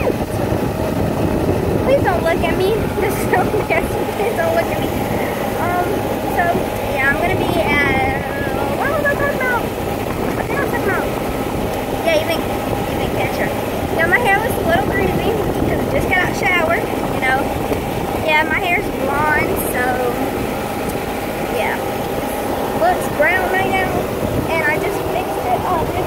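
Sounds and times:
golf cart running: 0:00.0 - 0:26.0
wind buffeting microphone: 0:00.0 - 0:26.0.

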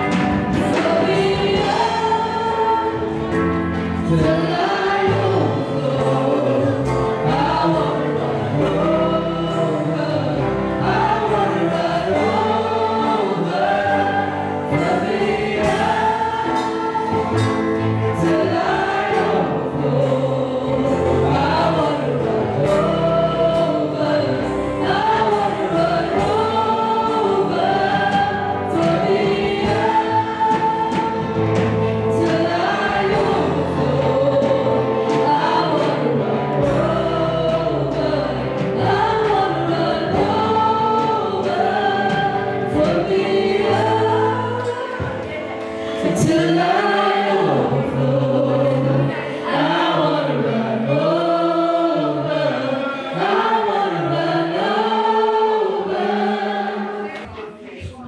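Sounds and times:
backing singers: 0:00.0 - 0:58.0
band with electric guitar: 0:00.0 - 0:58.0
woman singing into microphone: 0:00.0 - 0:58.0.

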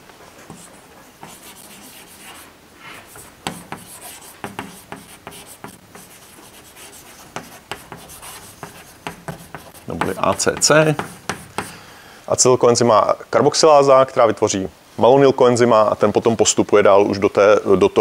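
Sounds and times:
chalk writing on a chalkboard: 0:00.5 - 0:11.8.

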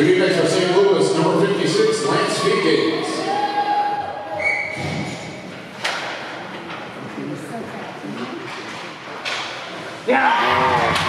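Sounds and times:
ice rink hall ambience: 0:00.0 - 0:11.0.

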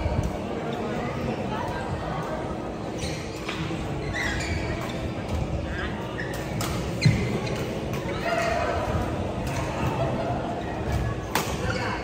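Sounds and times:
shoes squeaking on court floor: 0:02.9 - 0:08.6.

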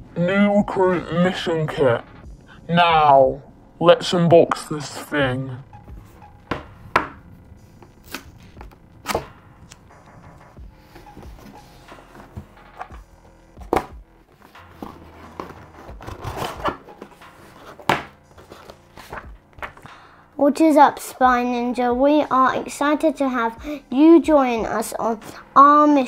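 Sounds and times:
cardboard and paper rustling: 0:13.7 - 0:19.9
cardboard scraping: 0:13.7 - 0:19.9.

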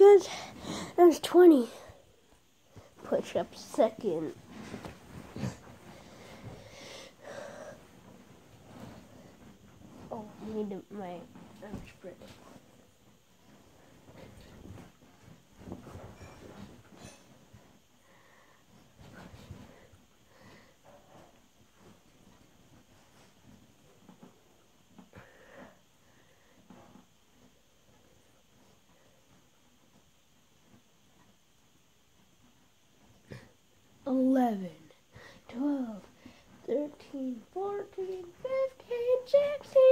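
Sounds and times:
small rustles: 0:00.0 - 0:34.4
soft body movements: 0:00.0 - 0:39.9
faint breathing: 0:00.2 - 0:01.0, 0:05.4 - 0:08.2, 0:18.0 - 0:18.8, 0:19.6 - 0:21.2, 0:25.1 - 0:26.8, 0:35.1 - 0:35.5.

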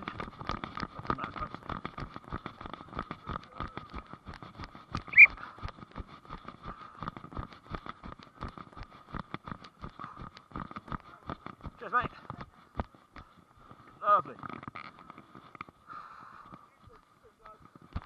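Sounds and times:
footsteps running on grass: 0:00.0 - 0:14.2.

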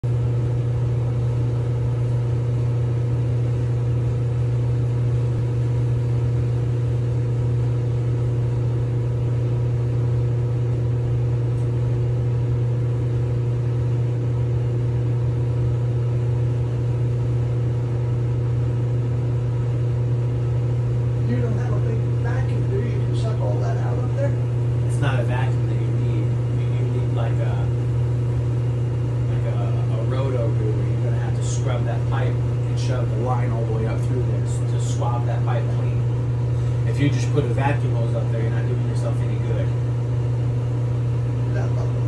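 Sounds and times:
clothes dryer motor humming: 0:00.0 - 0:42.0.

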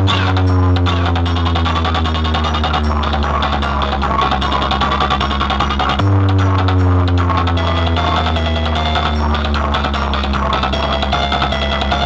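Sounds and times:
deep bass note: 0:00.0 - 0:12.0
dj remix over loudspeakers: 0:00.0 - 0:12.0
falling synth sweep: 0:00.0 - 0:12.0.

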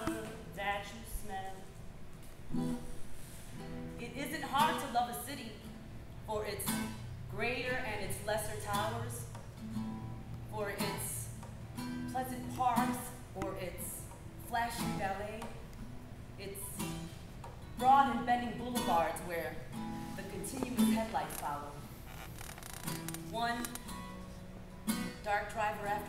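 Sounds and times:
acoustic guitar chords: 0:00.0 - 0:22.1, 0:22.8 - 0:26.0.

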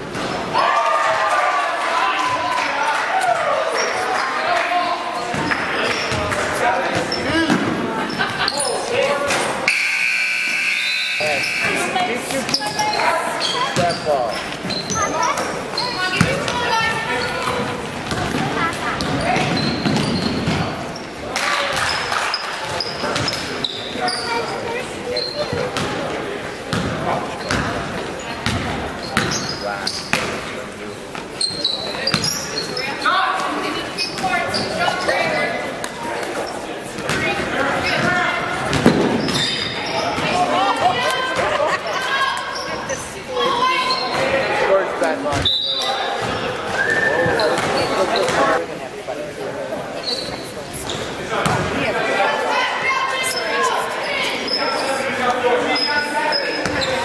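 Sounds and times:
voices calling out in a hall: 0:00.0 - 0:57.0.

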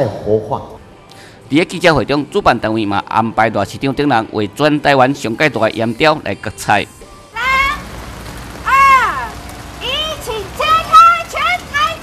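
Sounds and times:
noisy outdoor background: 0:06.8 - 0:12.0
high-pitched voice calling out: 0:07.4 - 0:07.8.

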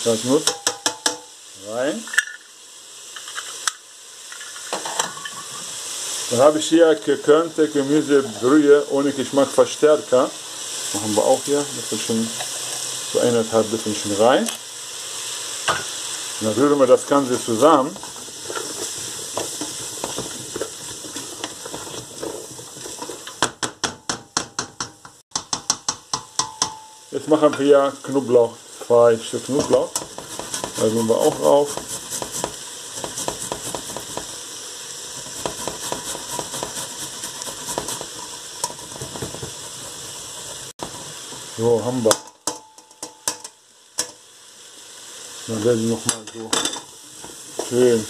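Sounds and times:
vegetables sizzling in oil: 0:00.0 - 0:48.0
spoon knocking against pot: 0:00.4 - 0:01.3, 0:23.3 - 0:27.0
wooden spoon stirring: 0:17.0 - 0:23.5, 0:29.4 - 0:34.4, 0:35.2 - 0:41.3
grater scraping garlic: 0:30.0 - 0:34.2, 0:35.2 - 0:39.0.

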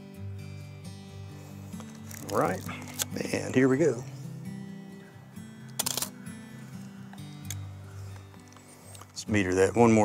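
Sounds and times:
camera shutter clack: 0:05.7 - 0:06.2.

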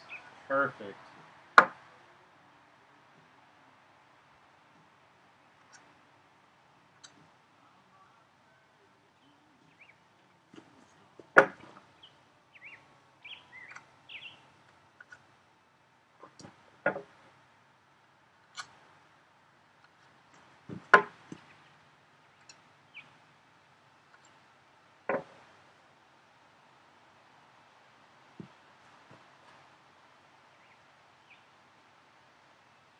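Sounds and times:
wood knocking on wood: 0:16.4 - 0:17.1, 0:20.7 - 0:21.5, 0:25.1 - 0:25.4.

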